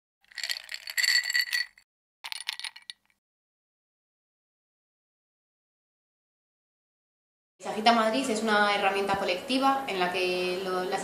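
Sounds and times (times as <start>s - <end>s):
ice rattling in cocktail shaker: 0.2s - 3.1s.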